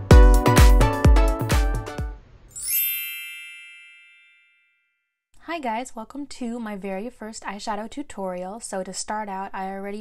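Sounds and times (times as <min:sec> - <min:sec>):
electronic music beat: 0:00.0 - 0:02.2
bright high chime: 0:02.5 - 0:05.0.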